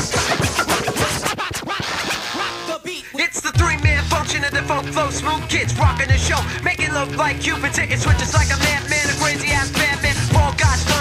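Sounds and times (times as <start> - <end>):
hip hop track: 0.0 - 11.0
turntable scratching: 0.0 - 11.0.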